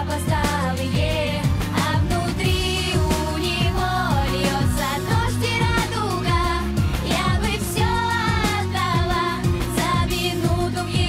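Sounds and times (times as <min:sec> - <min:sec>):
drum beat with deep kicks: 0:00.0 - 0:11.0
pop song: 0:00.0 - 0:11.0
woman singing: 0:00.0 - 0:11.0.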